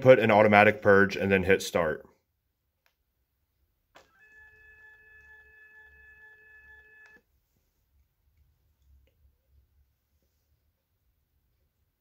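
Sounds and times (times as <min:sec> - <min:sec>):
infusion pump high tone: 0:04.0 - 0:07.2.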